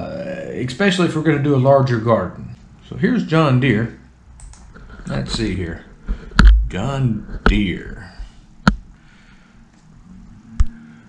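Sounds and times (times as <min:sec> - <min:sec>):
faint low hum: 0:00.0 - 0:11.0
computer mouse click: 0:04.4 - 0:04.7.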